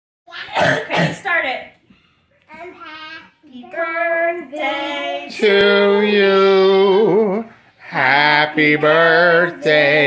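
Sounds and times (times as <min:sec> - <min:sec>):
person coughing: 0:00.5 - 0:01.3.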